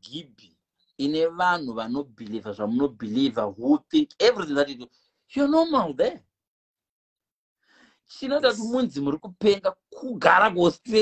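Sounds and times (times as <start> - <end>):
man speaking: 0.0 - 6.2, 8.1 - 11.0
faint breath drawn in: 7.6 - 8.1.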